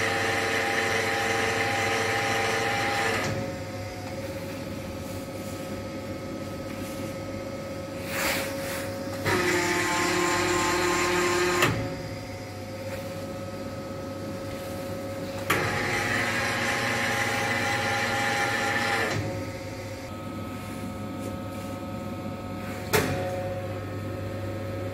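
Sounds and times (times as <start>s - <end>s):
grinding machine humming: 0.0s - 24.9s.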